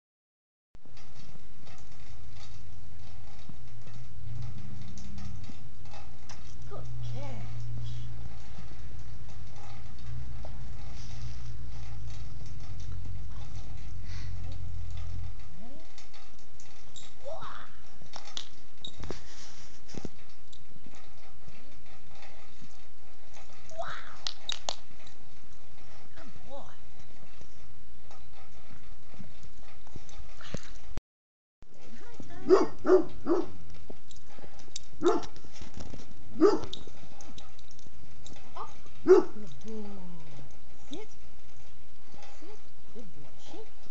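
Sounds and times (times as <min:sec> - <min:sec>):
low rumble: 0:02.8 - 0:18.1.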